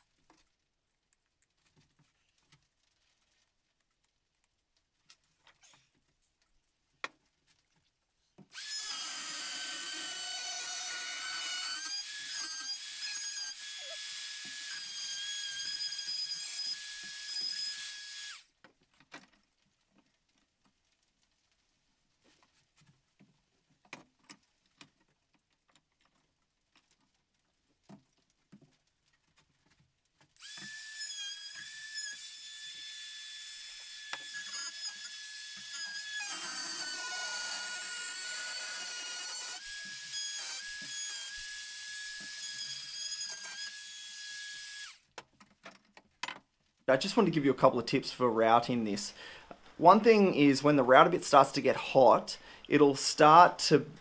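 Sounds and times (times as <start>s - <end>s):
router motor whine cutting metal: 30.4s - 45.0s.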